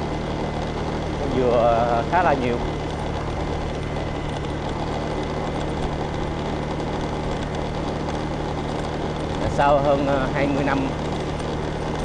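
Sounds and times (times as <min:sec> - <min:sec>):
motorbike engine cruising: 0:00.0 - 0:12.0.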